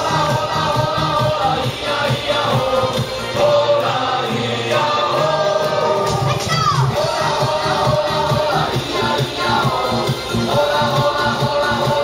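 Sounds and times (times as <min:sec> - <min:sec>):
crowd singing in unison: 0:00.0 - 0:12.0
music with steady beat: 0:00.0 - 0:12.0.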